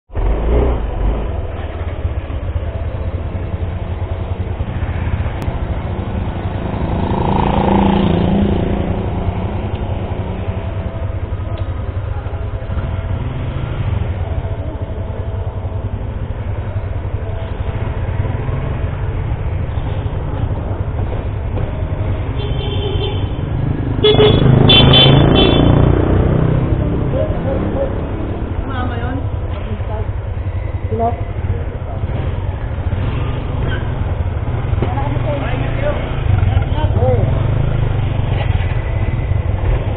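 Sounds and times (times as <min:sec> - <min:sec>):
motorcycles idling: 0:00.1 - 0:39.9
vehicle horn honking: 0:22.3 - 0:23.4, 0:24.0 - 0:25.9.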